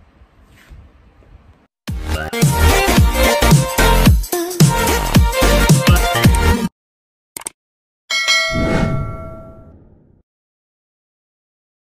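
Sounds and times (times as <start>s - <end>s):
bell chime ding: 8.1s - 9.7s.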